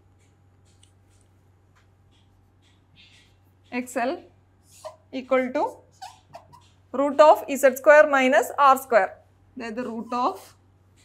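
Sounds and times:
marker squeaking on whiteboard: 2.1 - 3.8, 4.6 - 6.9.

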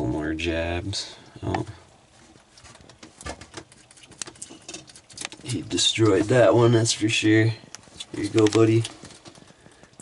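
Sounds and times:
lizard crunching food: 2.3 - 10.0.

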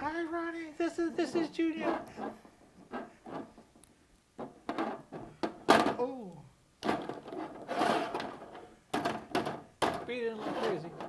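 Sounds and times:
plastic action figures knocking: 4.4 - 6.2, 6.8 - 10.2.

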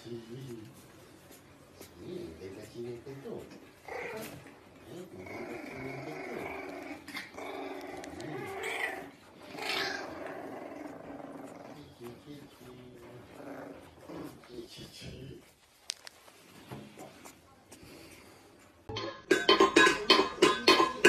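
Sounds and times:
puppy growling: 1.6 - 15.5.

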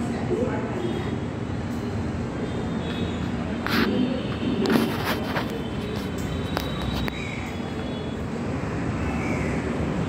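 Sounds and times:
ceiling fans whirring: 0.0 - 10.0.

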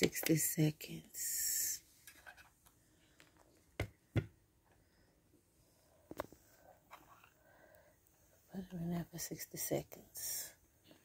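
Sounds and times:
person speaking: 0.0 - 1.9, 8.5 - 10.6
knocks on a desk: 3.8 - 4.3.

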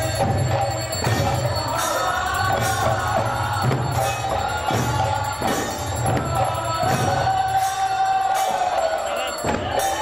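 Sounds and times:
drums and percussion: 0.0 - 10.0.

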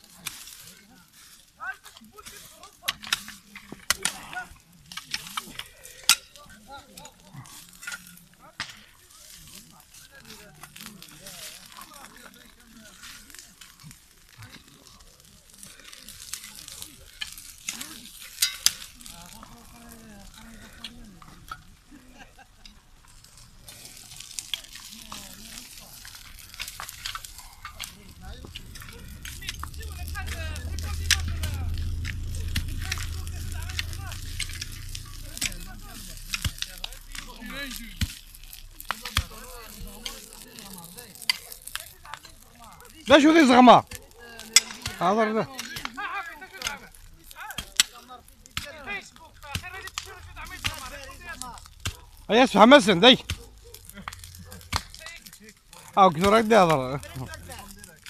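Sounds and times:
brush fire crackling and snapping: 0.0 - 58.0
distant voices: 2.7 - 58.0
low rumble: 22.9 - 42.6, 48.7 - 58.0
sharp pops: 45.7 - 58.0.

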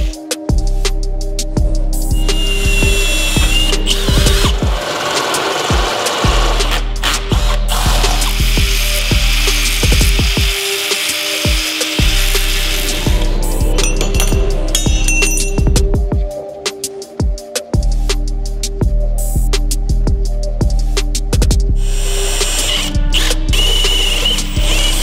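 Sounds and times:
music with bass beat: 0.0 - 25.0
cordless drill: 2.2 - 13.1, 21.9 - 25.0
angle grinder cutting steel: 2.2 - 15.6.

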